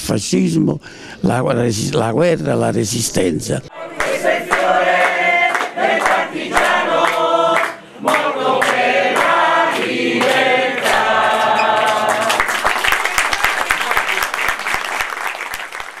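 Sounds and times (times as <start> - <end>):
people singing in chorus: 3.7 - 12.6
applause: 4.0 - 16.0.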